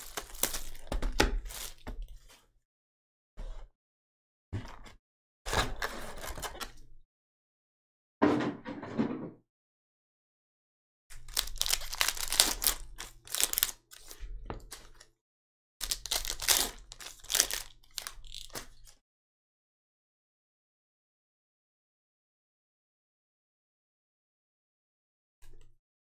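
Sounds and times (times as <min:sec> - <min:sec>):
foil wrappers crinkling and tearing: 0:00.0 - 0:02.0, 0:11.1 - 0:15.0, 0:15.8 - 0:19.0.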